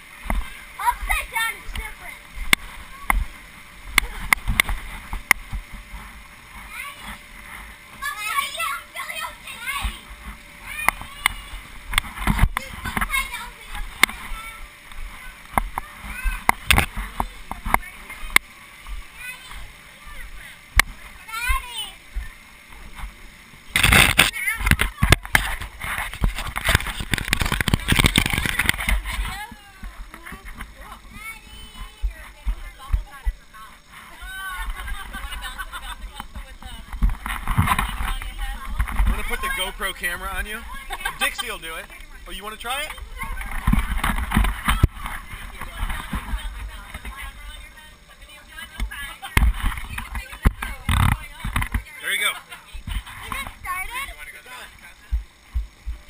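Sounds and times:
people talking: 0.4s - 4.4s, 8.0s - 11.7s, 12.3s - 18.4s, 19.0s - 22.4s, 23.8s - 25.6s, 26.2s - 55.3s
people chatting: 0.5s - 3.3s, 8.0s - 11.7s, 12.3s - 18.4s, 19.0s - 22.4s, 23.9s - 25.4s, 26.2s - 55.2s
rubbing and scraping on camera: 22.8s - 42.0s, 42.8s - 47.7s, 48.5s - 52.0s.

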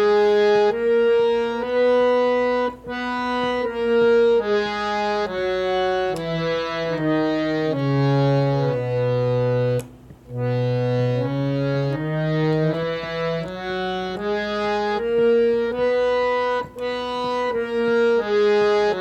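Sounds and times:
harmonium playing a scale: 0.0s - 19.0s.

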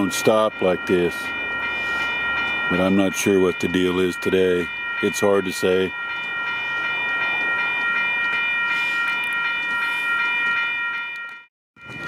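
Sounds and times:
high multi-tone whine: 0.0s - 12.0s.

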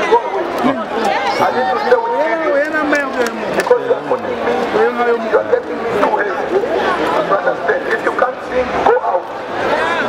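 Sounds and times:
crowd of voices: 0.0s - 10.0s.

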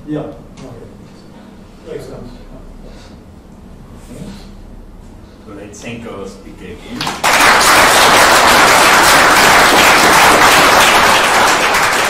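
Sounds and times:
audience applauding: 7.0s - 12.0s.

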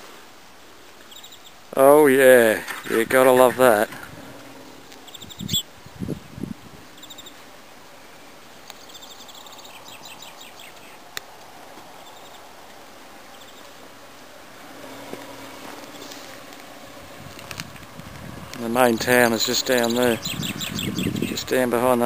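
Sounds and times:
faint bird chirps: 4.6s - 6.0s, 6.8s - 7.4s, 8.0s - 11.0s, 19.8s - 21.4s.

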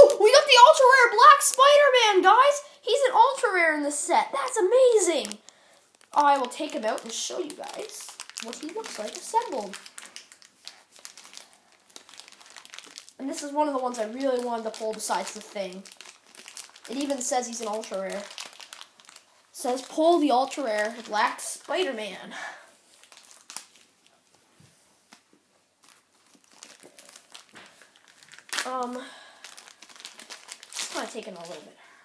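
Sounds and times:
toy packaging crinkling: 0.0s - 3.5s, 4.2s - 22.2s, 22.9s - 24.4s, 25.1s - 31.8s.

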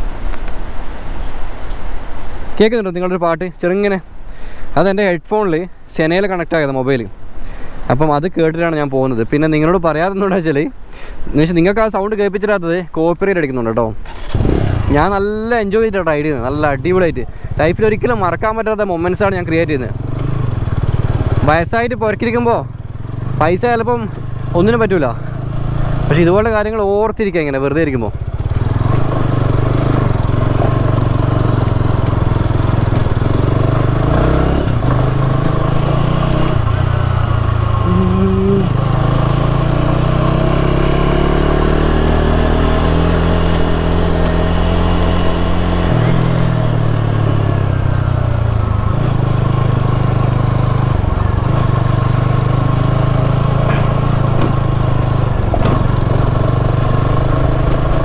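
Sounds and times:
man talking: 2.6s - 4.1s, 14.9s - 20.0s, 21.4s - 22.7s, 23.4s - 25.3s, 26.1s - 28.2s, 37.8s - 38.9s
motorcycle engine at low revs: 14.0s - 58.0s.

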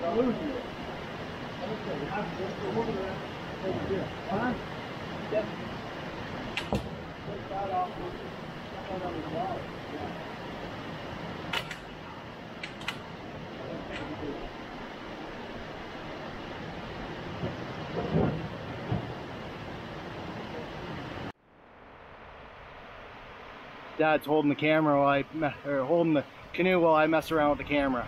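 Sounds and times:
water rushing over dam: 0.0s - 21.3s
dull knocks: 6.6s - 7.1s
sharp clicks: 11.5s - 11.9s, 12.6s - 13.1s.

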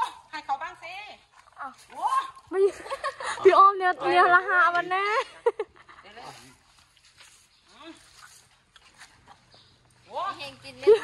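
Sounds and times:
soft rustling: 6.1s - 9.9s.

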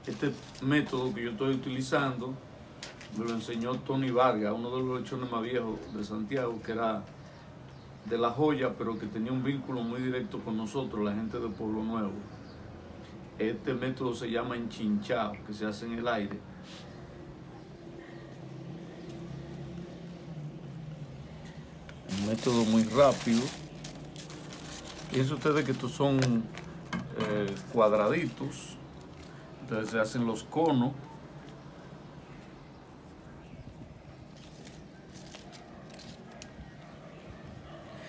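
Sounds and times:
paper rustling and crinkling: 0.0s - 1.8s, 2.8s - 4.2s, 20.9s - 31.6s, 34.0s - 36.6s
soft paper crackles: 0.0s - 1.9s, 2.8s - 4.4s, 18.3s - 36.8s
low steady background hum: 0.0s - 38.0s.

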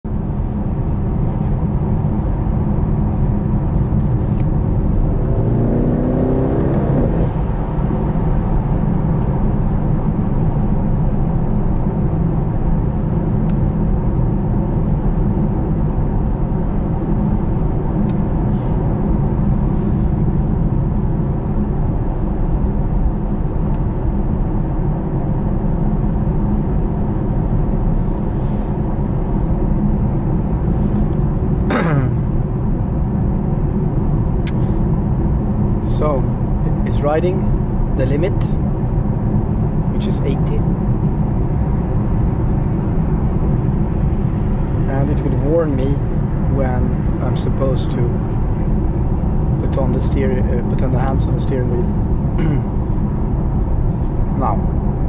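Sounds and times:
car engine drone: 0.0s - 55.0s
tyre and road noise: 0.1s - 55.0s.

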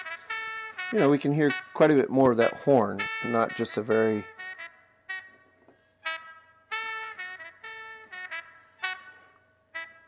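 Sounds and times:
trumpet playing short notes: 0.0s - 10.0s.

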